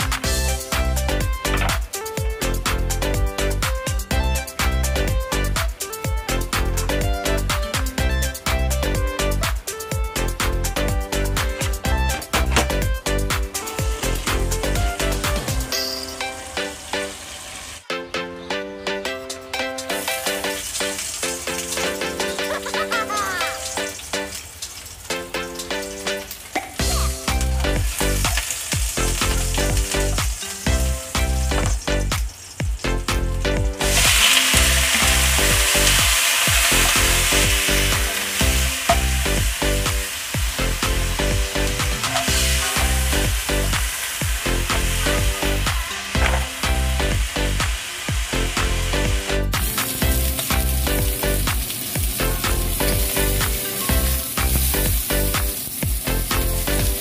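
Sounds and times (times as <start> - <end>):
background music with steady beat: 0.0 - 57.0
oil sizzling in a wok: 11.2 - 17.8, 19.8 - 57.0.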